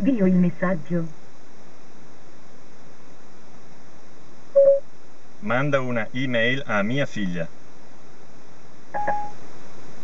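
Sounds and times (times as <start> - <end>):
steady hiss: 0.0 - 10.0
short electronic beep: 4.6 - 4.8, 9.0 - 9.4.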